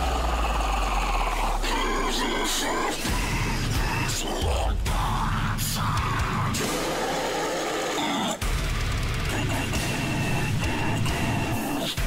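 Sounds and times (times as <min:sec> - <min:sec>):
heavy metal song: 0:00.0 - 0:12.0.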